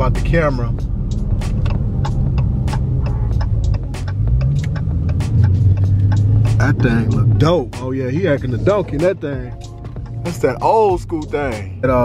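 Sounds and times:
sharp ticks: 0:00.0 - 0:11.8
car engine rumble: 0:00.0 - 0:12.0.

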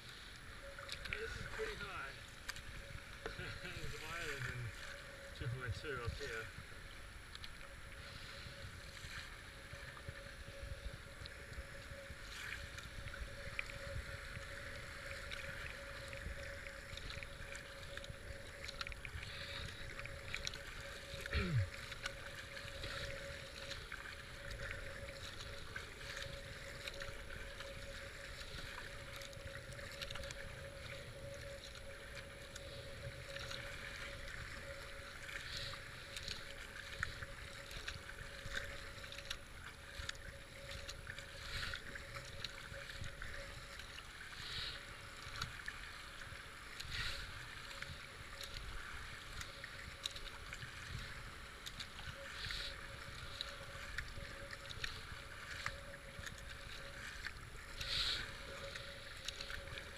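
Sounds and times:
paddle stroke splashes: 0:00.0 - 0:06.6, 0:11.4 - 0:59.9
faint steady hum: 0:00.0 - 0:59.9
floodwater rushing around hull: 0:00.0 - 0:59.9.

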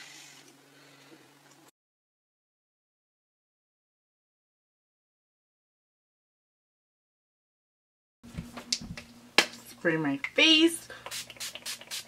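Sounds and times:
woman speaking: 0:09.7 - 0:11.0.

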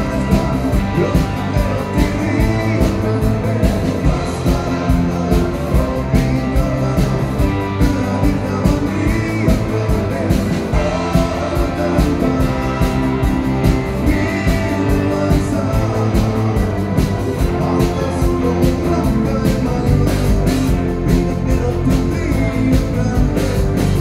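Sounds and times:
drum kit steady beat: 0:00.0 - 0:24.0
electric guitars: 0:00.0 - 0:24.0.

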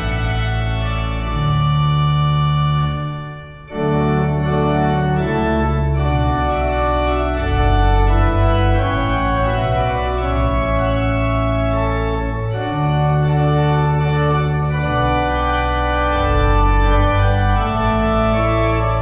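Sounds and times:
deep organ bass line: 0:00.0 - 0:19.0
pipe organ playing chords: 0:00.0 - 0:19.0.

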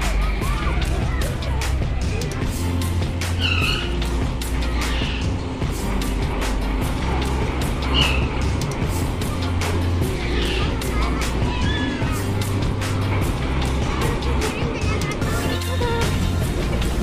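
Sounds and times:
loud music with pulsing bass: 0:00.0 - 0:17.0.

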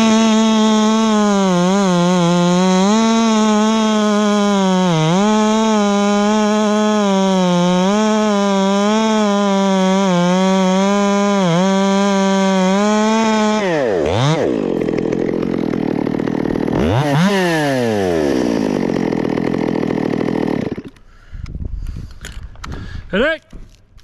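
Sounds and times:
chainsaw cutting wood: 0:00.0 - 0:21.5.

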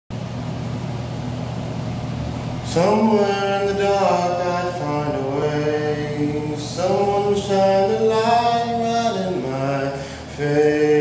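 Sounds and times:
mechanical hum: 0:00.1 - 0:11.0.

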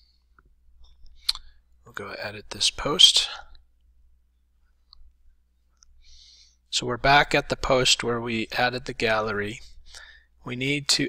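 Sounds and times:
faint low hum: 0:00.0 - 0:11.0
person speaking: 0:01.3 - 0:03.7, 0:06.7 - 0:11.0.

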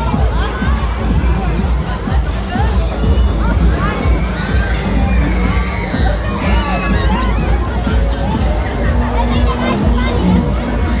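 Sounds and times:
crowd shouting and calling: 0:00.0 - 0:11.0
music with heavy bass: 0:00.0 - 0:11.0.

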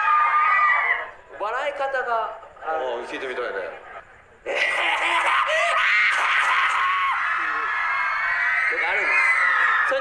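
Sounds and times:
audience screaming and cheering: 0:05.8 - 0:10.0.

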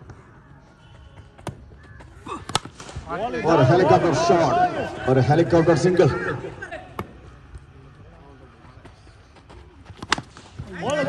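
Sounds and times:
bird calling: 0:00.2 - 0:02.6.

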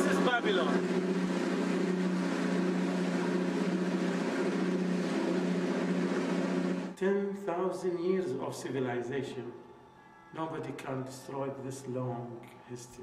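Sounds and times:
motorboat engine drone: 0:00.0 - 0:07.0
water rush: 0:00.0 - 0:07.0.

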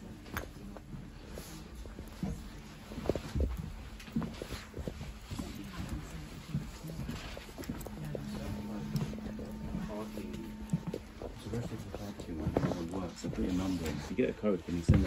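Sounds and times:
faint voices: 0:00.0 - 0:15.0
footsteps on train floor: 0:00.0 - 0:15.0
low hum: 0:01.9 - 0:14.1.

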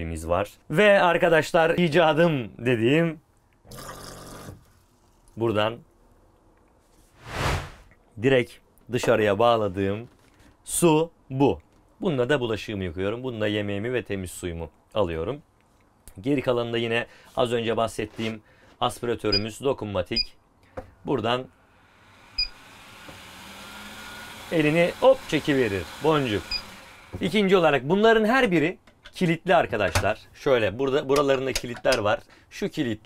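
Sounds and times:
whoosh sound effect: 0:07.2 - 0:07.9
extractor fan humming: 0:21.7 - 0:27.2.

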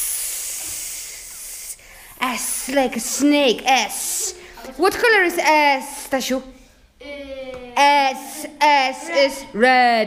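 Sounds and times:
person hissing like a snake: 0:00.0 - 0:01.9.

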